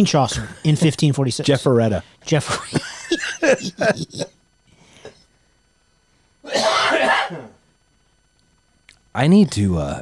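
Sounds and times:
man coughing and clearing throat: 2.6s - 4.3s, 6.5s - 7.6s.

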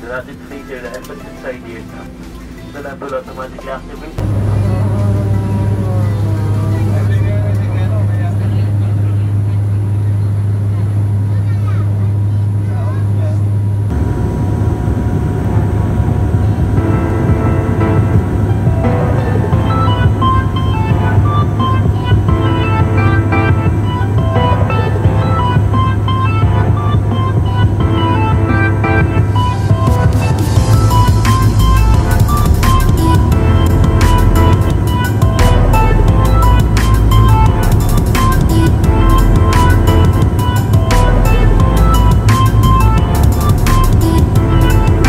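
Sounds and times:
background music with steady beat: 0.0s - 8.0s, 16.0s - 45.0s
voices: 0.0s - 13.8s
aircraft cabin drone: 0.0s - 45.0s.

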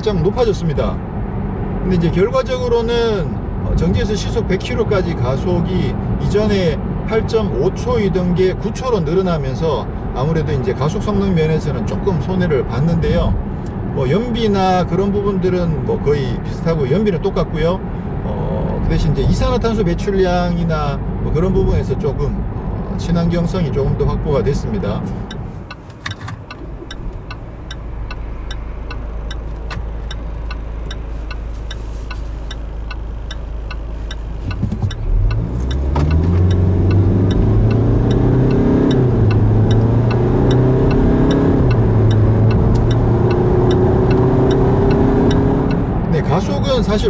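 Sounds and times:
diesel engine heard from cabin: 7.5s - 47.0s
faint regular ticking: 25.1s - 45.9s.

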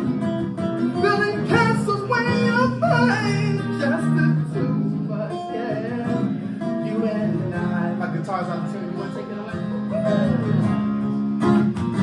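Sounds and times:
two guitars playing: 0.0s - 12.0s.

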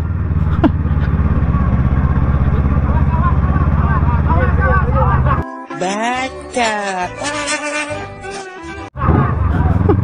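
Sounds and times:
motorcycle engine running at low revs: 0.0s - 5.4s.

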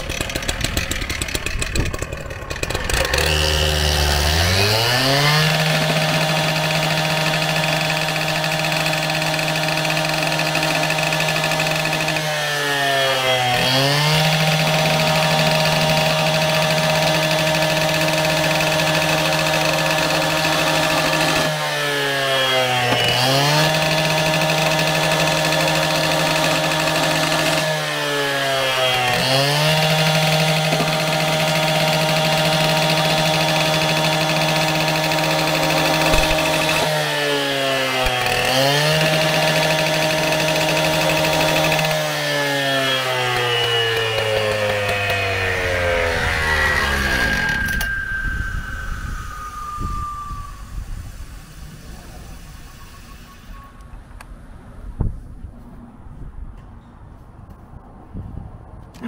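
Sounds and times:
beveller cutting plastic pipe: 0.0s - 27.8s, 28.7s - 47.9s
cut-off saw engine revving: 0.0s - 53.9s.

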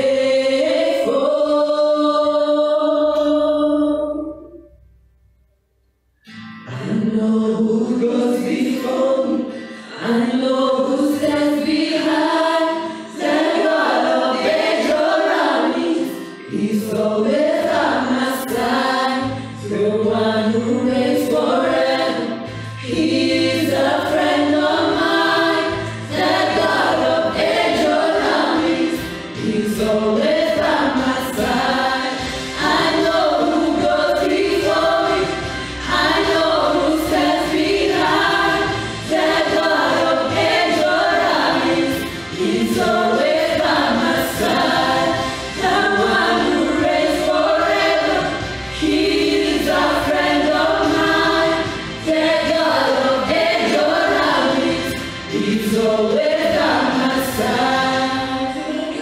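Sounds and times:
group singing into microphones: 0.0s - 4.6s, 6.7s - 59.0s.

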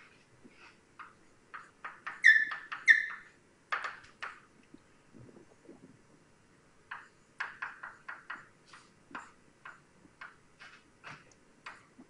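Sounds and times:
high-pitched squeaks: 2.1s - 3.3s
scratchy writing on a board: 10.6s - 11.9s.

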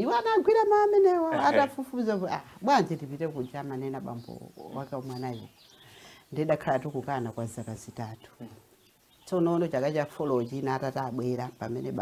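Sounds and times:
woman speaking expressively: 0.0s - 5.5s, 6.3s - 8.6s.

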